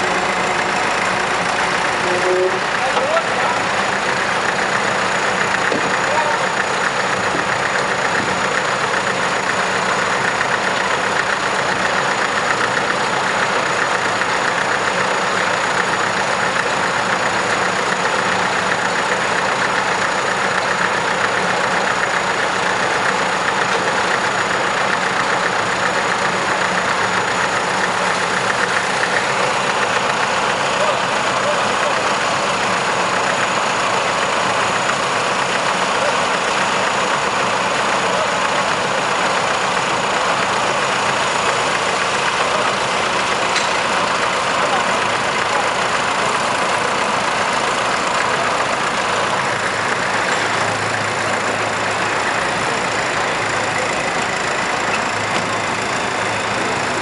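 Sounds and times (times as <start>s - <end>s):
diesel engines idling: 0.0s - 57.0s.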